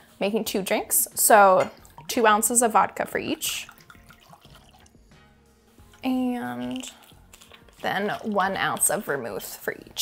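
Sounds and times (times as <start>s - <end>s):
soft background music: 0.0s - 10.0s
liquid trickling over ice: 3.4s - 5.0s, 5.8s - 10.0s.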